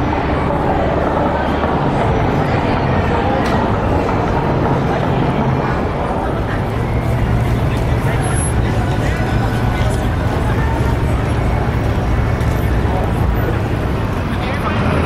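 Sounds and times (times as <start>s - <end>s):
crowd voices: 0.0s - 15.0s
low engine hum: 0.0s - 15.0s
vehicle traffic: 0.0s - 15.0s.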